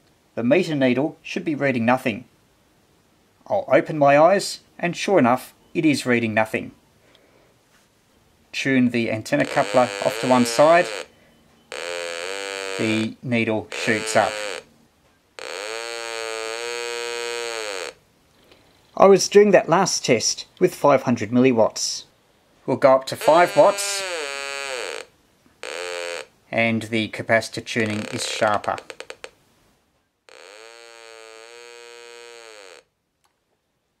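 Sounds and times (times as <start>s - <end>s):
buzzy oscillator tone from speaker: 9.2s - 11.1s, 11.7s - 14.7s, 15.4s - 18.0s, 23.1s - 26.3s, 27.8s - 29.3s, 30.3s - 32.9s.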